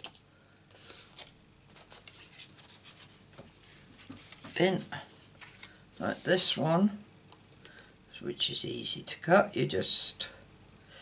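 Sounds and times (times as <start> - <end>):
paper rustling: 0.0 - 6.6.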